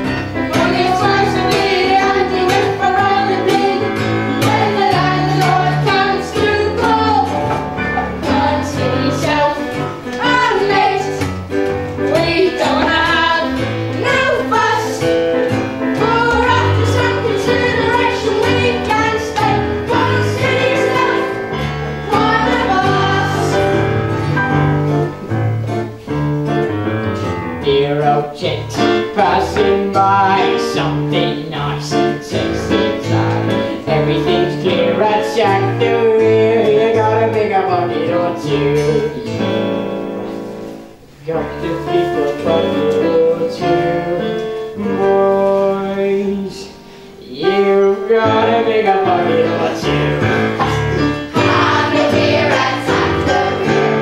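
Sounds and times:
young voices singing: 0.0 - 24.3, 28.0 - 39.8, 40.4 - 54.0
keyboard-led band: 0.0 - 54.0.

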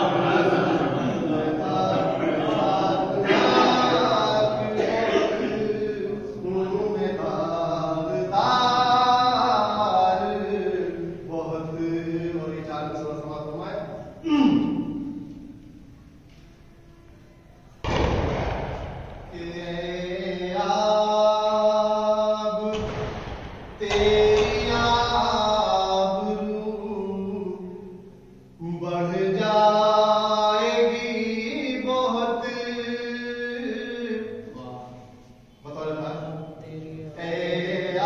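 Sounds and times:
man chanting devotional poem: 0.0 - 15.0, 23.8 - 38.0.

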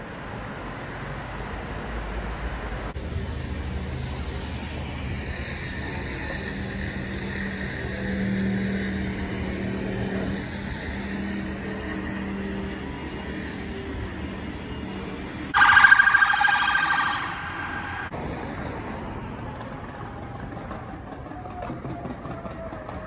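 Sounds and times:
engine street hum: 0.0 - 23.0
pulsing electronic alarm tone: 15.5 - 18.1.

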